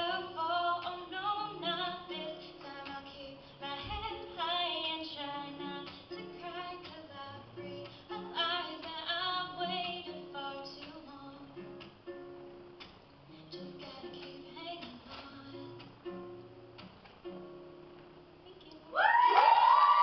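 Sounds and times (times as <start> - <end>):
woman singing: 0.0 - 11.8, 13.4 - 16.0
acoustic guitar: 0.0 - 18.9.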